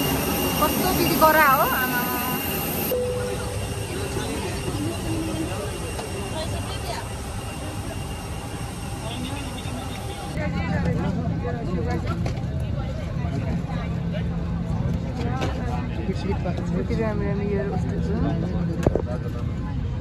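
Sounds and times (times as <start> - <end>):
passengers chattering: 0.0 - 20.0.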